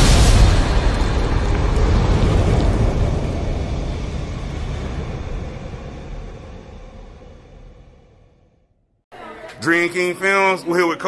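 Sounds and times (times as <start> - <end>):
deep rumbling boom tail: 0.0 - 9.0.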